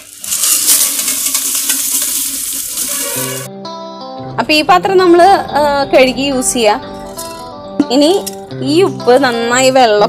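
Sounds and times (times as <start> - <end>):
salt grains pouring into basket: 0.0 - 3.5.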